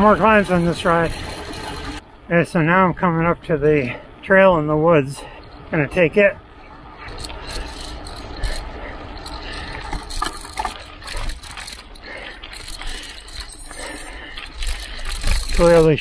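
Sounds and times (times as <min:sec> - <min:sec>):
bike rattling and clicking: 0:00.0 - 0:02.0, 0:05.1 - 0:16.0
tyres rolling over leaves: 0:00.0 - 0:02.0, 0:07.1 - 0:16.0.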